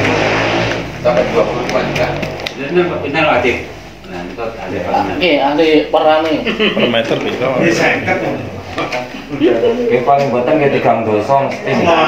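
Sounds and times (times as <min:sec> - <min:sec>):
men talking indistinctly: 0:00.9 - 0:12.0.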